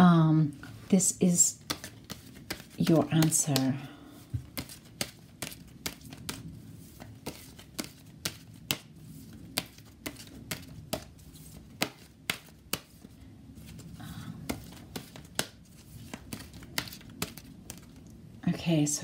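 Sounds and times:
faint low hum: 0:00.0 - 0:19.0
cards being shuffled: 0:01.5 - 0:18.1.

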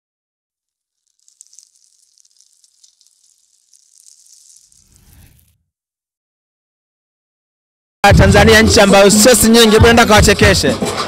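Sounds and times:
crackling hiss sound effect: 0:00.6 - 0:05.6.

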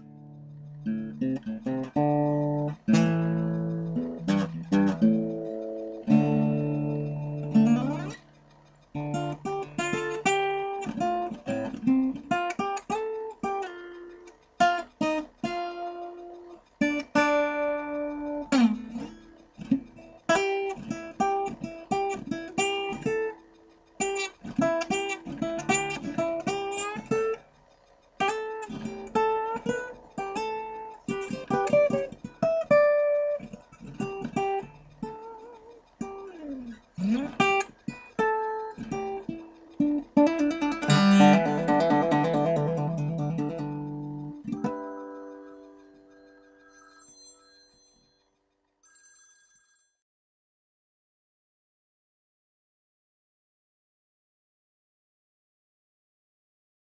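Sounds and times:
acoustic blues guitar: 0:00.0 - 0:08.2, 0:08.9 - 0:23.4, 0:24.0 - 0:27.4, 0:28.2 - 0:45.8.

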